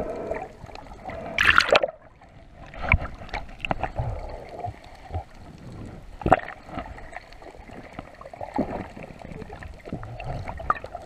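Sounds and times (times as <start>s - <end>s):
bubbles: 0.0s - 5.4s, 6.1s - 11.0s
underwater water movement: 0.0s - 11.0s.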